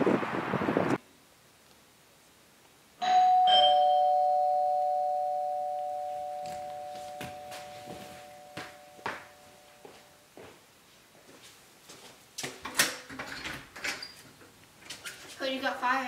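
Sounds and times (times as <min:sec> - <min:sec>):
ding-dong doorbell chime: 0:03.0 - 0:09.9.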